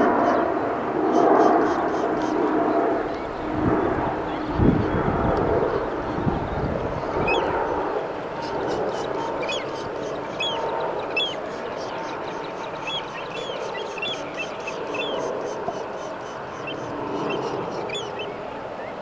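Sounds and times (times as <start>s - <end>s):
seabirds calling: 0.0s - 19.0s.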